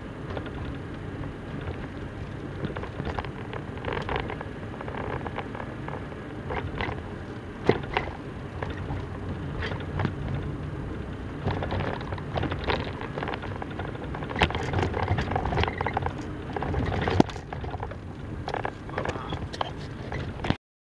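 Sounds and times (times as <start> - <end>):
car road and engine rumble: 0.0 - 20.6
sharp knocks and clicks: 7.6 - 10.5, 11.4 - 20.6.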